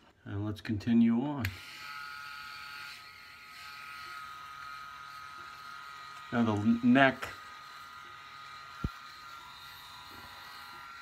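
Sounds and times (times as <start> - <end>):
electric shaver buzzing: 1.4 - 11.0.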